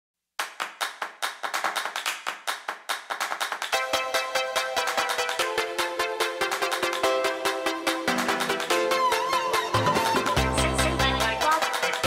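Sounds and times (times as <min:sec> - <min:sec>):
clap-like percussion hits: 0:00.4 - 0:12.0.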